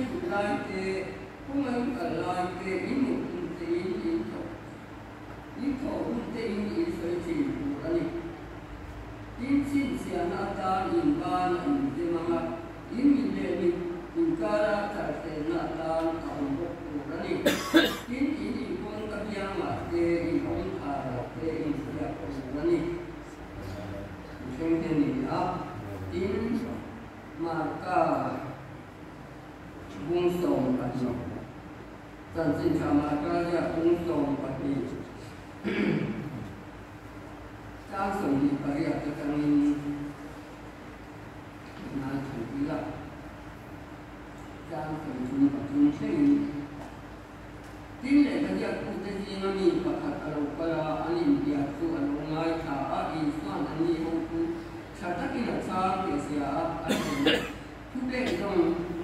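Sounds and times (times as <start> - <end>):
low room noise: 0.0 - 59.0
person talking: 9.4 - 28.6
person coughing: 17.4 - 18.2, 35.6 - 36.4, 56.9 - 58.5.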